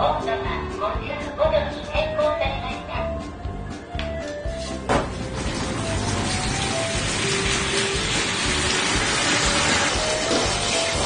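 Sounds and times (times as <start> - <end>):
background music: 0.0 - 11.0
tap water pouring into bucket: 4.9 - 11.0.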